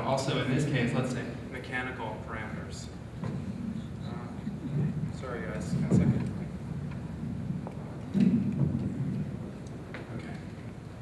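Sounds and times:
microphone thump: 0:05.7 - 0:06.4, 0:07.6 - 0:09.3.

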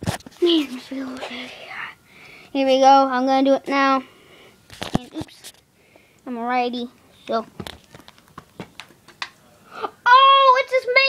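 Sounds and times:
rubber ball bouncing on plastic: 0:07.6 - 0:09.4.

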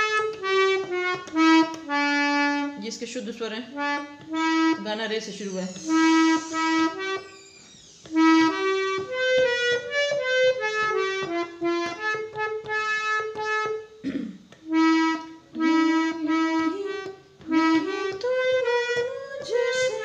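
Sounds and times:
harmonium melody: 0:00.0 - 0:20.0.

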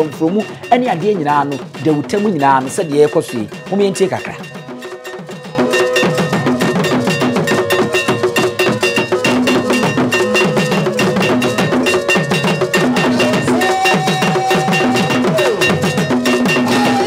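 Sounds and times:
iron bell struck with stick: 0:00.0 - 0:16.9
wooden drums beaten with sticks: 0:00.0 - 0:17.0.

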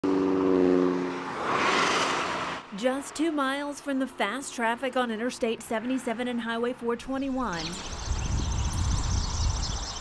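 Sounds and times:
tyre noise of passing vehicle: 0:00.0 - 0:10.0.

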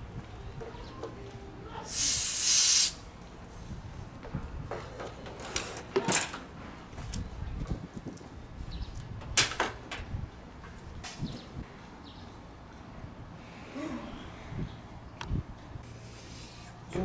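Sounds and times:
gas hissing from hoses: 0:01.9 - 0:03.0.

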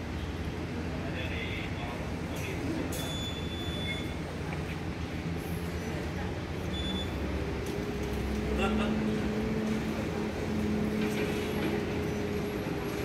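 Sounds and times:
distant traffic and machinery rumble: 0:03.8 - 0:13.0.

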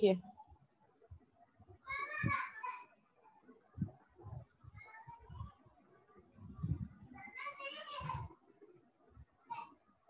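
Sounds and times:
faint high-pitched voice: 0:01.8 - 0:03.1, 0:04.3 - 0:08.6, 0:09.4 - 0:09.9.

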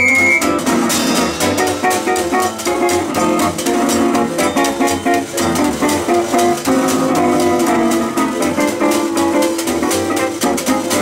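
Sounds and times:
acoustic guitar strumming chords: 0:00.0 - 0:11.0
plucked upright bass: 0:00.0 - 0:11.0
washboard rhythm: 0:00.0 - 0:11.0.

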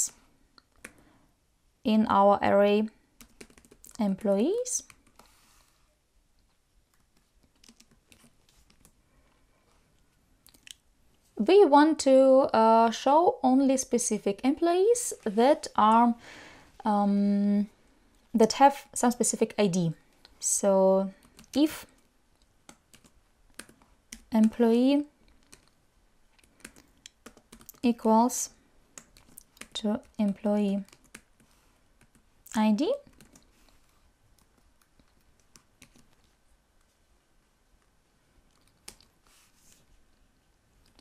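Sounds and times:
computer keyboard keystrokes: 0:03.2 - 0:04.0, 0:06.9 - 0:09.0, 0:22.6 - 0:24.6, 0:25.4 - 0:25.8, 0:26.4 - 0:27.8, 0:29.0 - 0:31.4, 0:33.0 - 0:33.5, 0:34.3 - 0:36.4.

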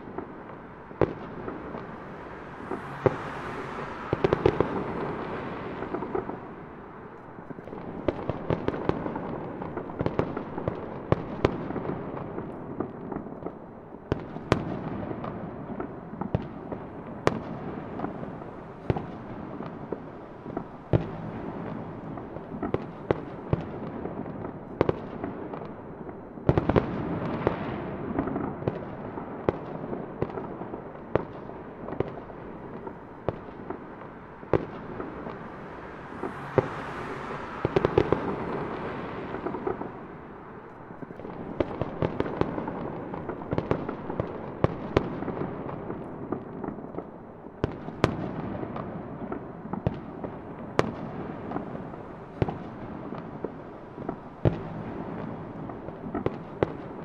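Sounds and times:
fireworks bangs and pops: 0:00.0 - 0:57.0.

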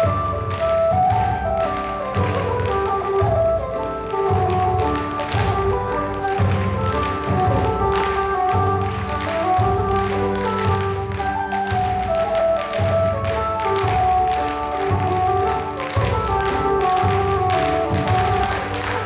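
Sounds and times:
dance shoes tapping on stage: 0:00.0 - 0:19.0.

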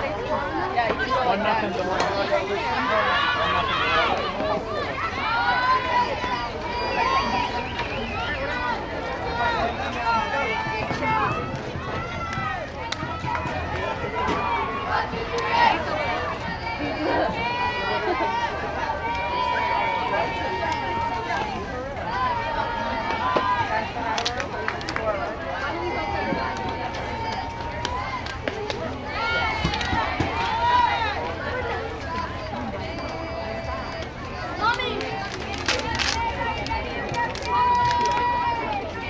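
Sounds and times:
overlapping voices talking and calling: 0:00.0 - 0:39.0.

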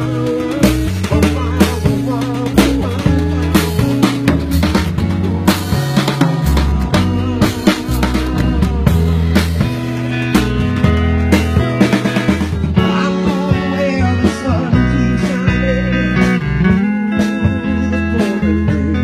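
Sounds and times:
bass line: 0:00.0 - 0:19.0
drum kit: 0:00.0 - 0:19.0
electric guitar bent notes: 0:00.0 - 0:19.0.

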